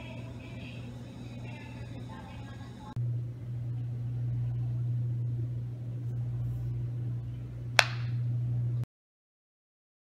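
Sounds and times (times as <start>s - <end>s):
steady low hum: 0.0s - 8.9s.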